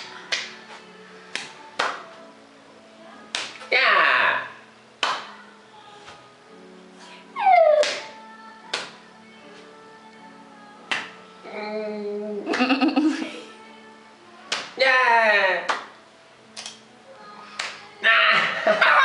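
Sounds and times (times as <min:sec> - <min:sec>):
hand claps and palm slaps: 0:00.0 - 0:02.2, 0:03.3 - 0:03.7, 0:05.0 - 0:05.4, 0:07.8 - 0:09.0, 0:10.9 - 0:11.2, 0:12.5 - 0:12.8, 0:14.5 - 0:14.8, 0:15.6 - 0:16.0, 0:17.6 - 0:18.5.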